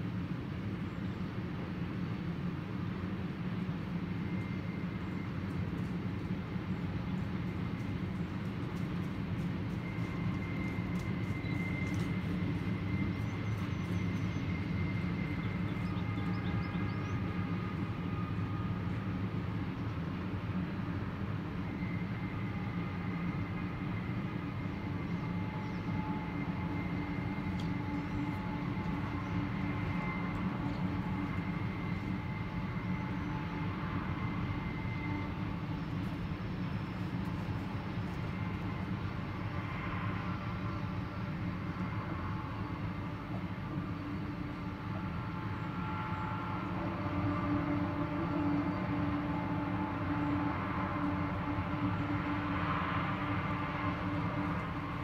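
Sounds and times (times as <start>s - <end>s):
train tank cars rolling on rails: 1.3s - 55.0s.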